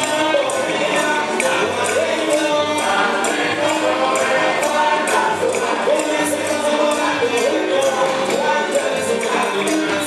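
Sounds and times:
guitar: 0.0 - 10.0
voices singing in chorus: 0.0 - 10.0.

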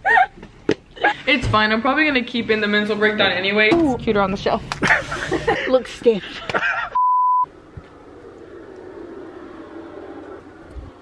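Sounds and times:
test tone beep: 7.0 - 7.5.

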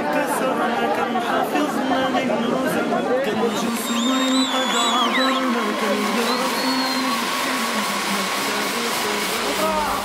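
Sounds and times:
spark fountains hissing: 3.4 - 10.0.

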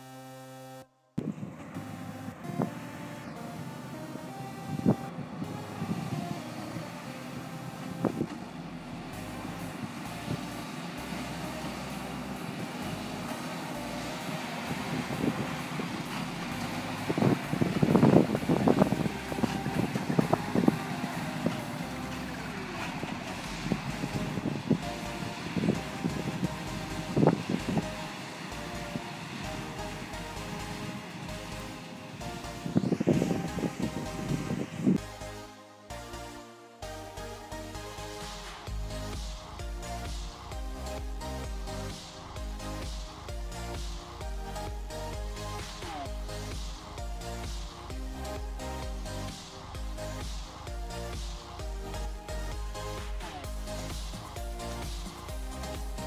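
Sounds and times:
baler mechanical din: 1.2 - 35.1.

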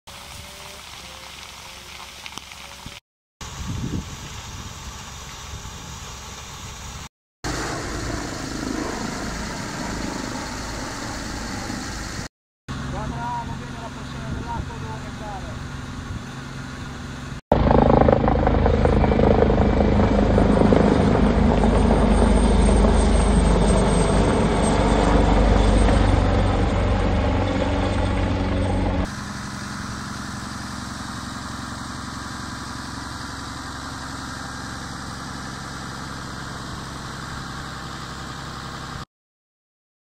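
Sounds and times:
fire engine pump humming: 3.4 - 39.0
helicopter flying over: 7.5 - 39.0.

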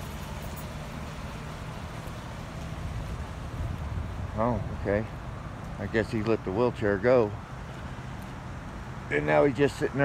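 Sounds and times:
road traffic rumble: 0.0 - 10.0
vehicle engines idling: 0.0 - 10.0.

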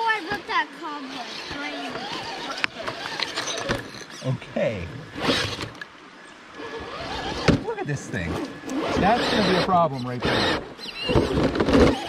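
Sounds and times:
toy car drivetrain running: 8.7 - 12.0.

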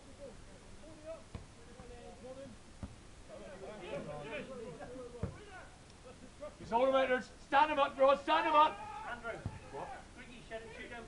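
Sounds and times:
distant footballers shouting: 3.2 - 11.0.

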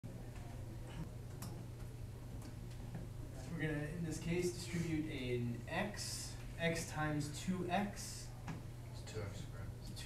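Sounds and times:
low room hum: 0.1 - 10.0.

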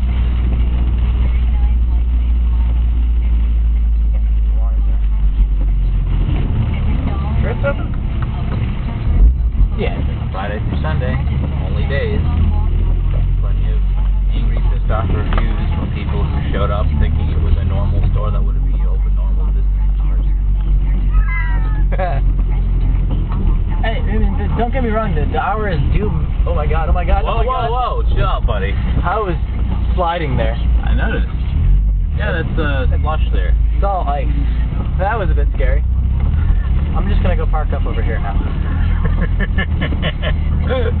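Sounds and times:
car engine and tyres on wet road: 0.0 - 41.0
person laughing: 38.8 - 41.0.

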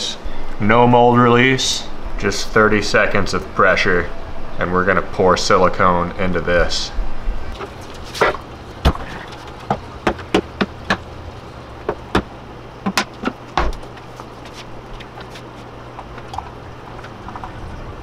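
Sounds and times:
steady low hum: 0.0 - 18.0
plastic buckets knocking: 7.6 - 11.1, 11.8 - 14.0.

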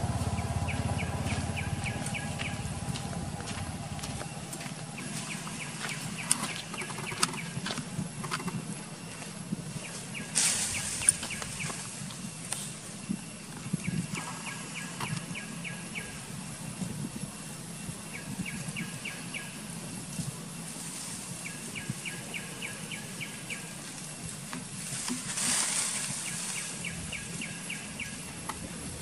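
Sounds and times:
rustles: 0.0 - 15.3, 20.0 - 29.0
outdoor background noise: 0.0 - 29.0.

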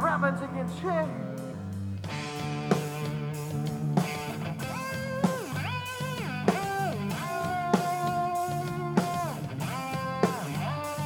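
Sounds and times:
electric guitar sustained notes: 0.0 - 11.0.

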